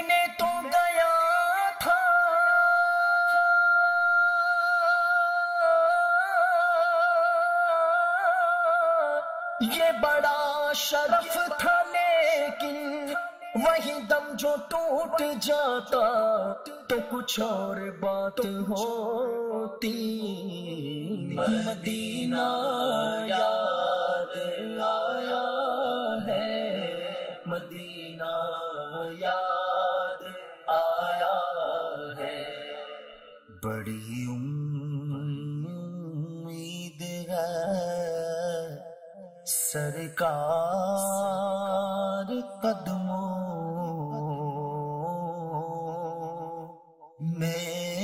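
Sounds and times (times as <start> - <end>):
man singing devotional song: 0.0 - 48.0.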